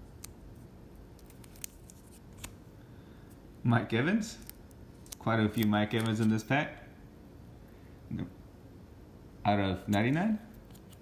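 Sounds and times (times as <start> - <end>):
plastic-sleeved cards clicking: 1.1 - 2.6, 4.3 - 6.4.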